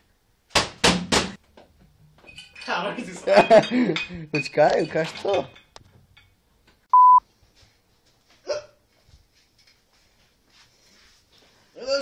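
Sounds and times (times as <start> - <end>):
short electronic beep: 6.9 - 7.2.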